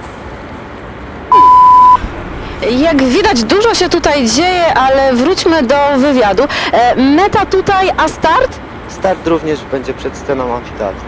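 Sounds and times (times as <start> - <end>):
outdoor background noise: 0.0 - 11.0
high-pitched censor beep: 1.3 - 2.0.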